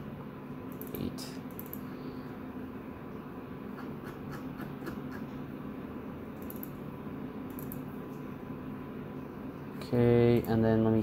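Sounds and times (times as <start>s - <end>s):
low background hum: 0.0s - 11.0s
mouse and keyboard clicks: 6.4s - 6.8s.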